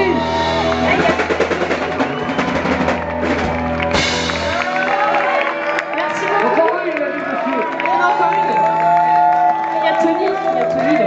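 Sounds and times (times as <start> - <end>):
pop-punk band playing loud: 0.0 - 5.5.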